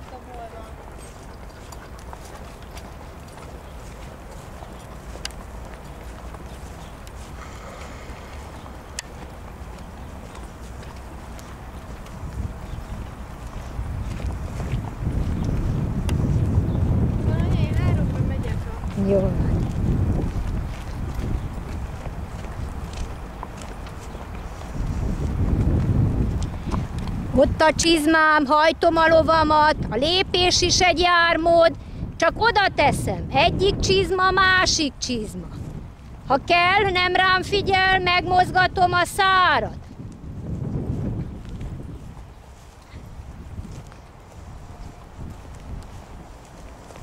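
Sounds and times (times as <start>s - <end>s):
steady low rumble: 0.0s - 27.4s
horses walking on grass: 0.0s - 47.0s
wind buffeting microphone: 0.0s - 47.0s.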